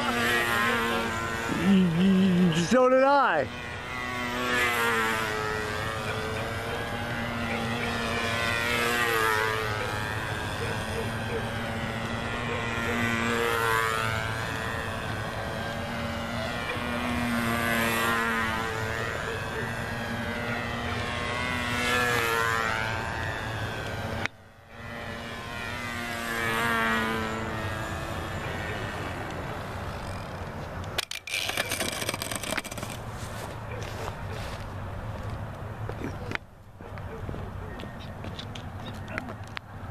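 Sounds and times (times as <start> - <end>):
model plane engine and propeller: 0.0 - 39.9.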